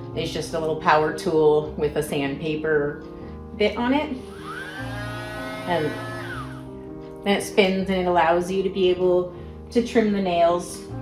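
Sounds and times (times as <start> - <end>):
background guitar music: 0.0 - 10.9
rotary tool buzzing: 4.2 - 6.7.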